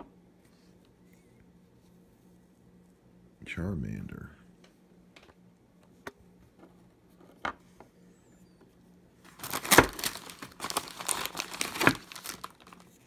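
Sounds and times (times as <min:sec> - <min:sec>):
plastic wrapper crinkling: 0:09.2 - 0:13.0.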